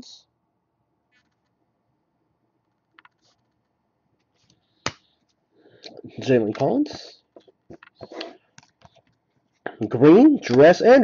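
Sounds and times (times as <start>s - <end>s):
trading cards scraping and clicking: 3.0s - 5.4s, 6.4s - 9.6s
man talking: 5.9s - 7.3s, 9.7s - 11.0s.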